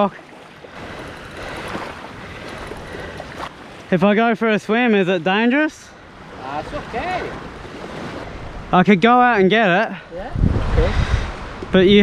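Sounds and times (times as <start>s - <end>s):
small waves lapping shoreline: 0.0s - 9.1s
wind: 0.0s - 12.0s.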